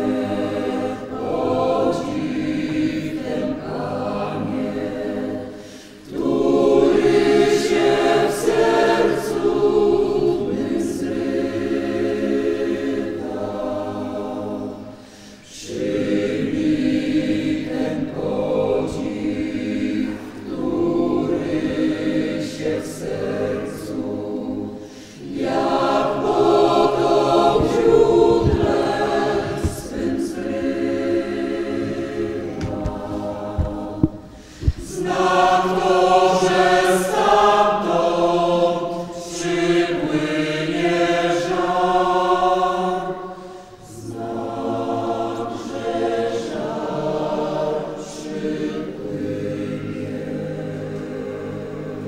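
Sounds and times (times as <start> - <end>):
congregation singing a hymn: 0.0 - 52.0
brief knocks: 32.5 - 34.9.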